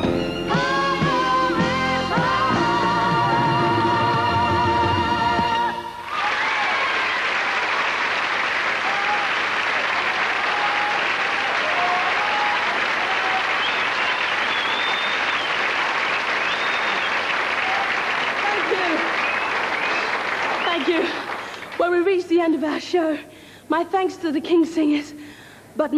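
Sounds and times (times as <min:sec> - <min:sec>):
cheers: 0:05.9 - 0:21.6
audience applauding: 0:06.0 - 0:22.0.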